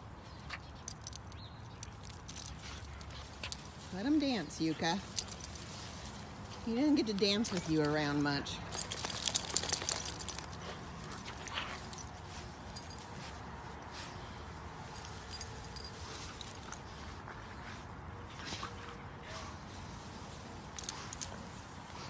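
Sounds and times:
collar tags jingling: 0.0 - 22.0
soft rustling on grass: 0.0 - 22.0.

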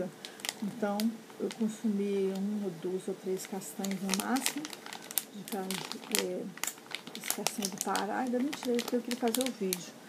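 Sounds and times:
woman speaking: 0.0 - 10.0
plastic bag crinkling: 0.2 - 2.5, 3.3 - 10.0.

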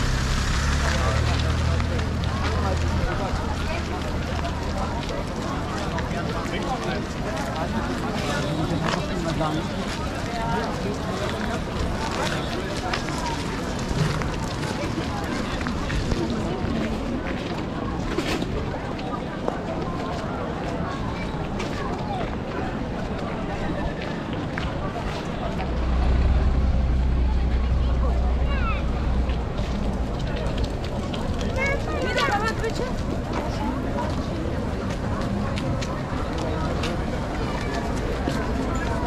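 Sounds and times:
babble of passers-by talking: 0.0 - 39.0
low rumble: 25.5 - 30.8.

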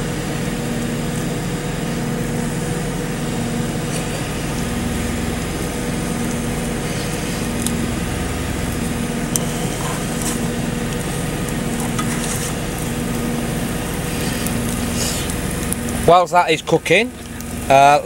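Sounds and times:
omelette sizzling in frying pan: 0.0 - 17.9
low hum: 0.0 - 18.0.

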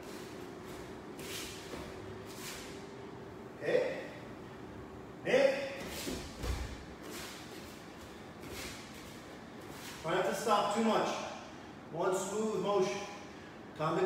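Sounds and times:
man calling out: 3.6 - 4.2, 5.2 - 5.8.

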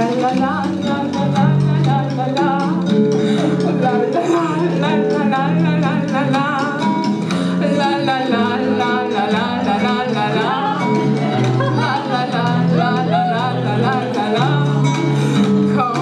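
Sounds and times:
plucked guitar: 0.0 - 16.0
wavering melody with vibrato: 0.0 - 16.0.

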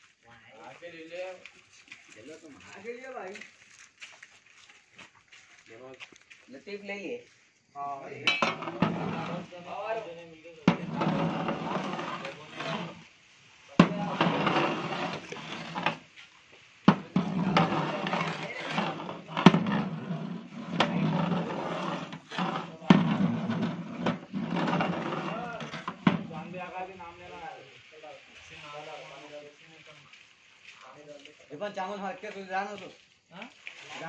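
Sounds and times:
metal rod knocking metal pot: 8.3 - 9.4.

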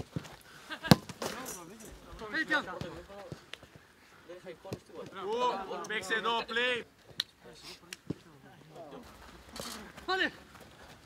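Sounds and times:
players' voices: 0.7 - 10.6.

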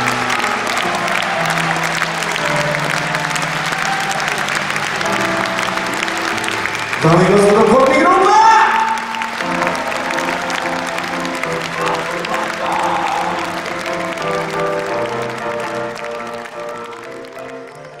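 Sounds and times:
audience applause: 0.0 - 18.0.

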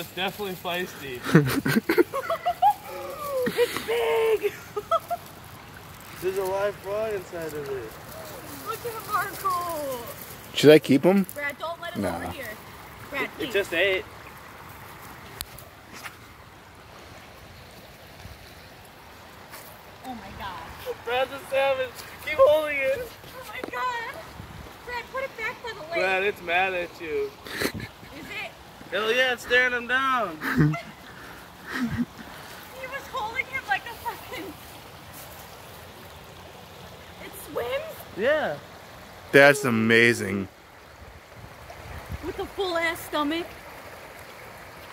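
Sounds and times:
water flowing over rocks: 0.0 - 44.9.

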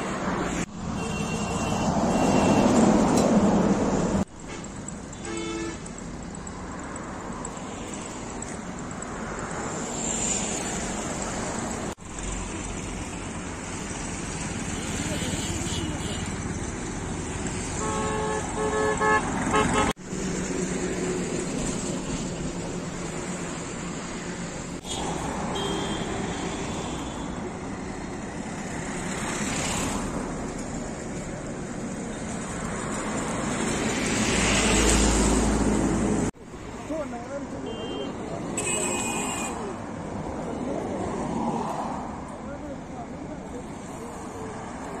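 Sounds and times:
road traffic passing: 0.0 - 45.0
vehicle horn toots: 5.2 - 5.9, 17.8 - 20.0, 24.8 - 27.4, 37.7 - 39.7.

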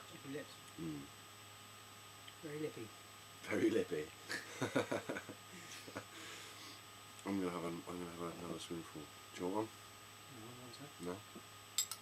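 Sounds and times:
spoon clinking: 11.8 - 12.0.

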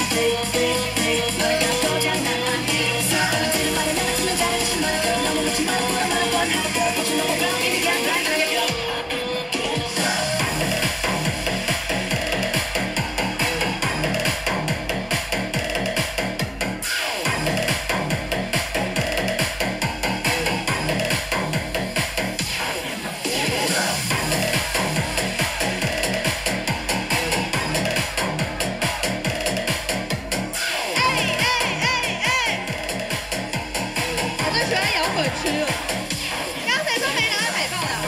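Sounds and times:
electronic dance music: 0.0 - 38.0
fast kick-drum beat: 0.0 - 38.0.

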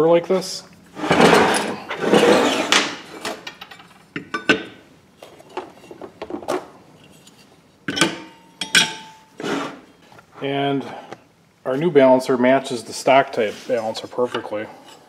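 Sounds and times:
metal scraping on workbench: 1.0 - 2.9, 9.4 - 10.0
metal parts clanking: 1.0 - 4.6
metal part ringing: 7.9 - 9.3.

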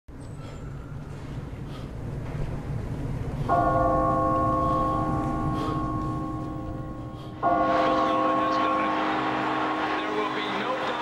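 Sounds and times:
large bell ringing: 3.4 - 11.0.

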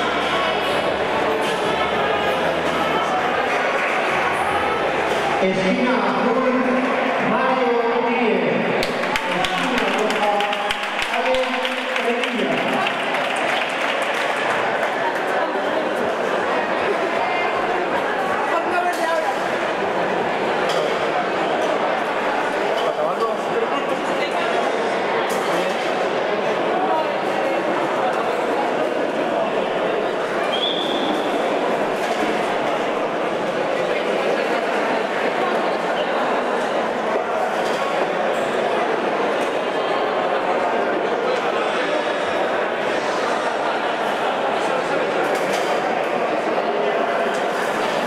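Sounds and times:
crowd babble in a hall: 0.0 - 48.0.

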